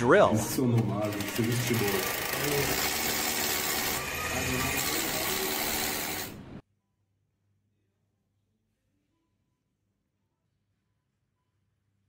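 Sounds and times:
cordless drill running: 0.8 - 6.4.

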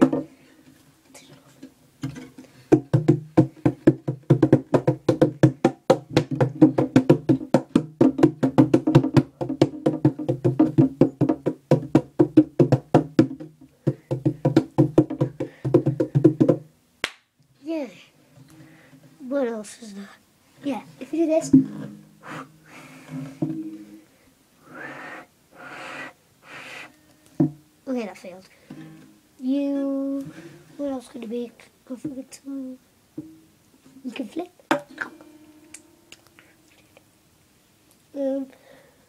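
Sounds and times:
hands tapping guitar body: 0.0 - 0.3, 2.0 - 16.7, 23.3 - 23.9, 27.2 - 27.7, 33.2 - 33.4, 34.7 - 35.9.

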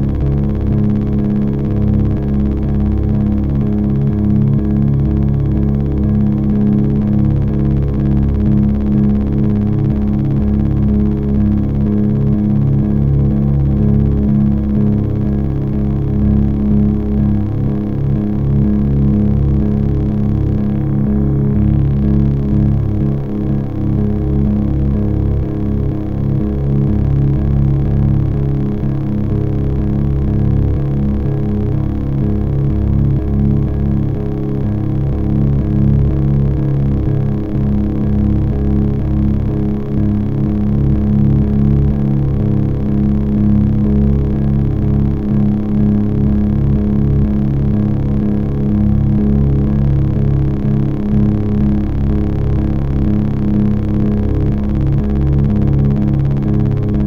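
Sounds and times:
low electronic drone: 0.0 - 57.0.

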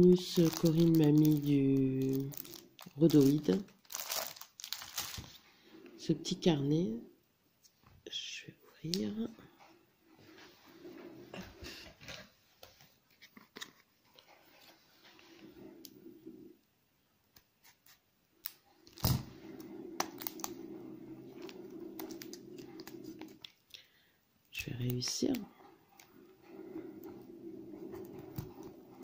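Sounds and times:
plastic wrapping crinkling: 0.0 - 5.4, 20.0 - 20.6, 21.2 - 23.7.

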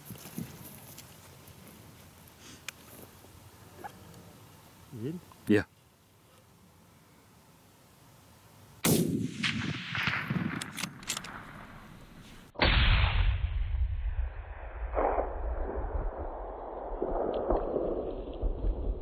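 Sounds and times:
rifle shot echoing: 8.8 - 14.2
loud low rumble: 12.6 - 19.0.

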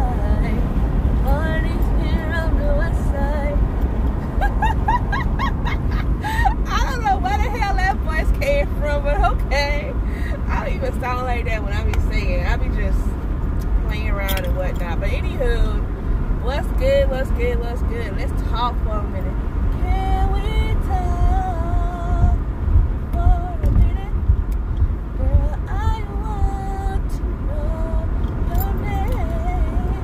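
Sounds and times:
woman singing wordlessly: 0.0 - 3.7, 6.6 - 9.9, 16.4 - 22.4, 23.1 - 24.3, 25.2 - 30.0
car driving rumble: 0.0 - 30.0.

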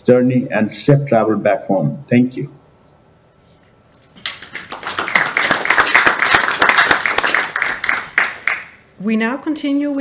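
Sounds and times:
audience applauding: 4.2 - 8.8.

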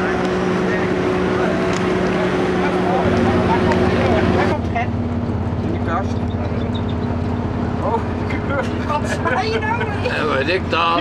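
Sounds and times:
diesel engine idling: 0.0 - 11.0
voices chattering: 0.0 - 11.0.

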